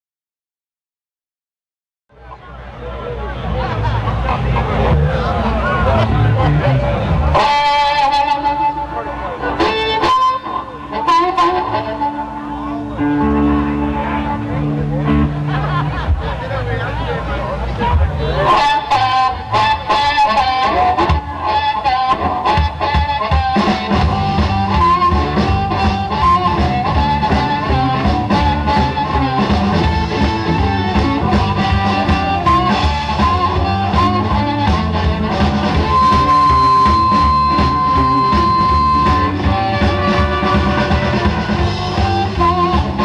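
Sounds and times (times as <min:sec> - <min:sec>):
bass line: 0:02.1 - 0:43.0
electric guitar: 0:02.2 - 0:43.0
amplified blues harmonica: 0:07.3 - 0:15.4, 0:18.4 - 0:43.0.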